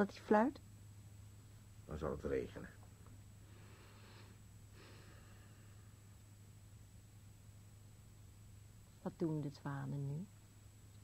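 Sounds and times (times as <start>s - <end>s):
low hum and faint hiss: 0.0s - 11.0s
faint breaths: 3.4s - 6.3s.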